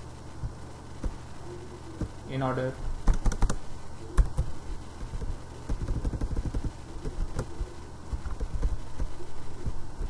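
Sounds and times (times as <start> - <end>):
computer keyboard typing: 3.0 - 3.6, 4.2 - 9.7.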